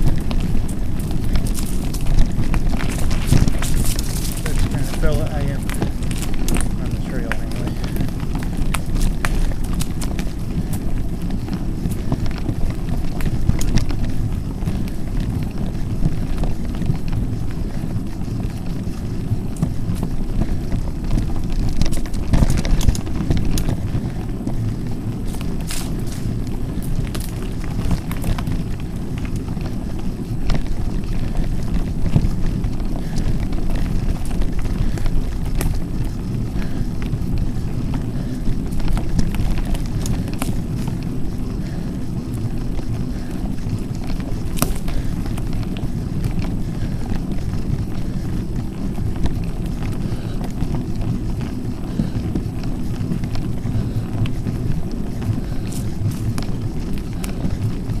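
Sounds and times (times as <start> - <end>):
bike clicks and rattles: 0.0 - 58.0
wind and tyre rumble: 0.0 - 58.0.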